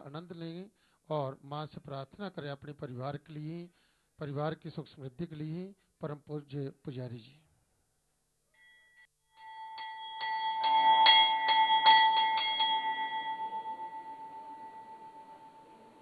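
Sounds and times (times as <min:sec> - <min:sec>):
temple bell ringing: 0:08.6 - 0:16.0.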